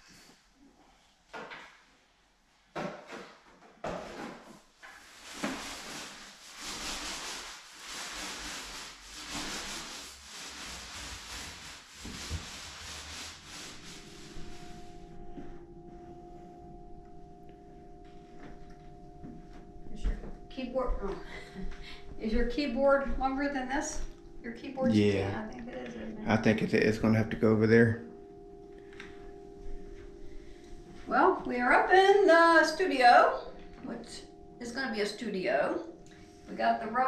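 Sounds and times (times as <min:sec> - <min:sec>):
paint roller swishing on wall: 0:02.9 - 0:15.6
faint steady hum: 0:13.1 - 0:37.0.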